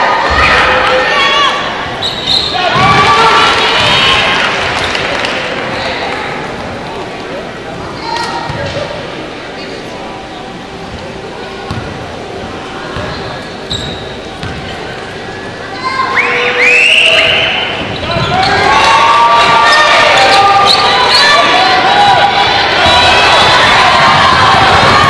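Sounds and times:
people shouting: 0.0 - 4.5, 15.7 - 25.0.

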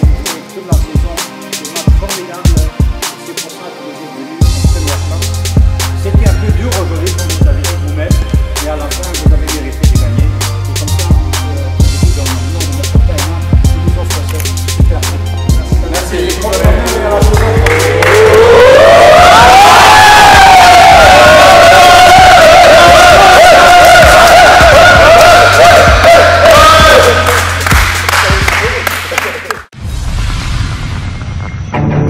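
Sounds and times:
music with bass-heavy beat: 4.4 - 28.8
men cheering: 16.0 - 28.8.

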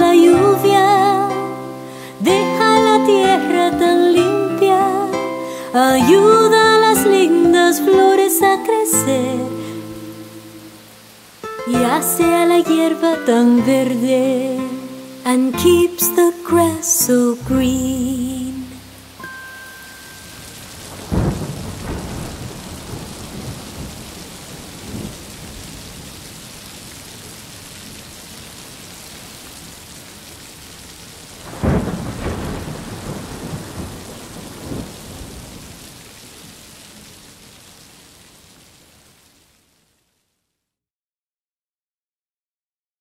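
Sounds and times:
steady rain: 0.0 - 40.6
faint thunder rumbles: 20.5 - 26.4, 31.4 - 36.2
thunderclaps rolling: 20.7 - 26.1, 31.4 - 35.8.

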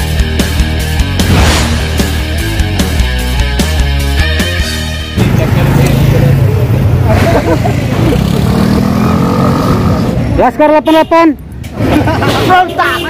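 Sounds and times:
rock music: 0.0 - 6.7
vehicle engines running: 5.1 - 10.8.

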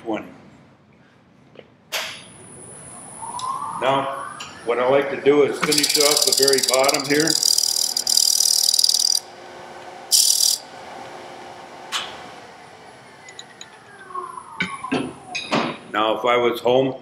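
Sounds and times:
lathe motor whine: 4.7 - 14.4
scraper hissing on spinning wood: 5.6 - 9.2.

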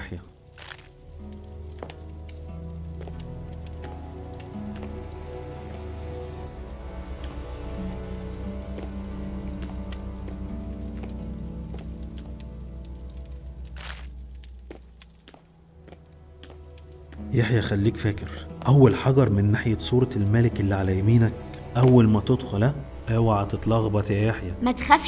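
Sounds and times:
faint scattered crackle: 0.0 - 24.4.

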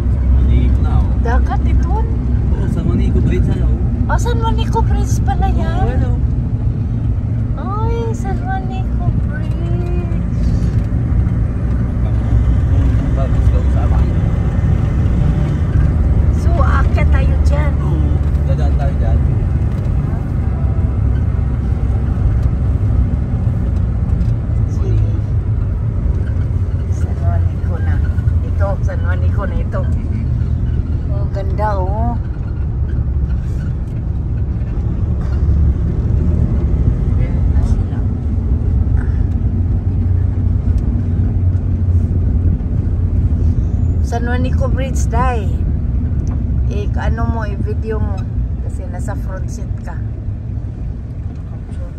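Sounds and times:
road and engine rumble in van: 0.0 - 51.9.

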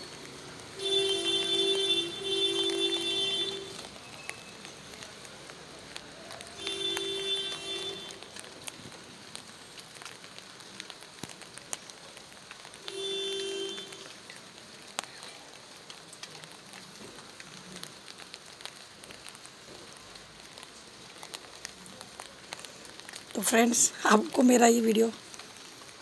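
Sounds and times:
rain falling: 0.0 - 26.0
horn tone: 0.8 - 3.8, 6.6 - 8.2.

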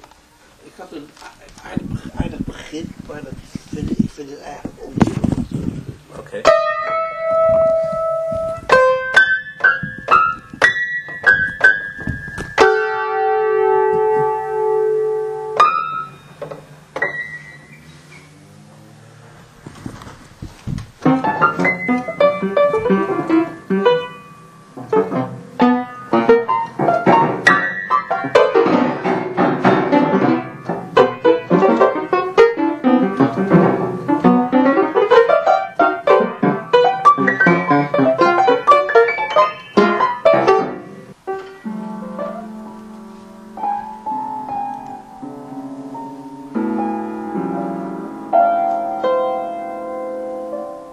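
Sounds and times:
upright piano improvisation: 0.0 - 50.9.

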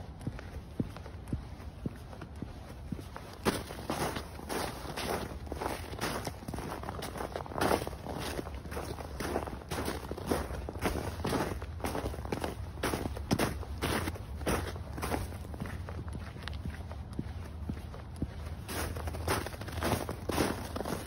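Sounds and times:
boots crunching through snow: 0.0 - 21.0.

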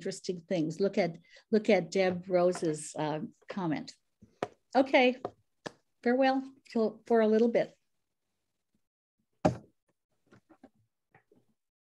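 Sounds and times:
sharp thump: 9.4 - 9.7.

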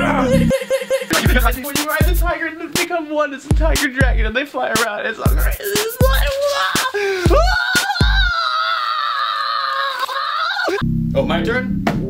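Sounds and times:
music beat thumping: 0.4 - 8.3
man screaming: 5.4 - 10.8.

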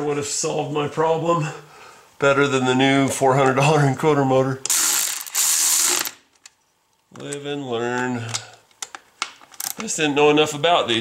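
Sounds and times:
electric ratchet whirring: 4.7 - 6.3.

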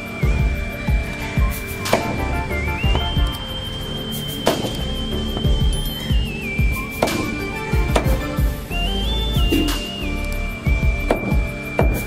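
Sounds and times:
low recurring beat: 0.0 - 12.0
whistle-like melody tone: 0.0 - 12.0.

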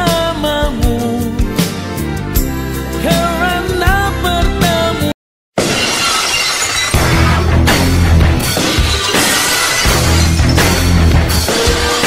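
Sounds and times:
glass shattering: 5.6 - 12.0.

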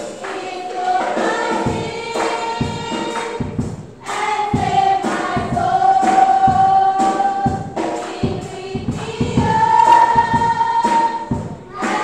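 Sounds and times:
children singing together: 0.0 - 12.0.

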